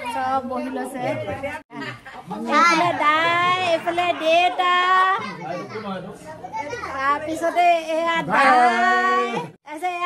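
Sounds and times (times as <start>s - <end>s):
child's high-pitched voice: 5.2s - 7.5s.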